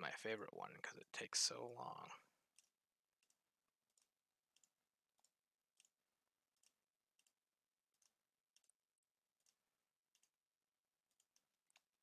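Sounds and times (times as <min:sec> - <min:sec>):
computer mouse clicks: 0:02.5 - 0:06.0, 0:06.6 - 0:08.8, 0:09.4 - 0:10.4.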